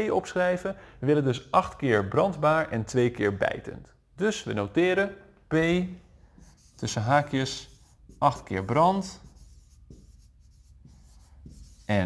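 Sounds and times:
marker scratching on whiteboard: 6.2s - 12.0s.

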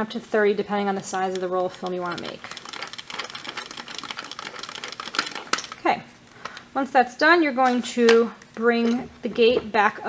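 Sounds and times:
film loader crank clicking: 1.1s - 5.8s.

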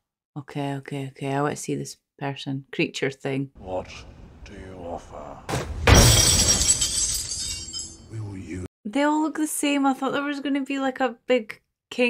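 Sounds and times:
coins scattering on stone floor: 6.1s - 8.0s.

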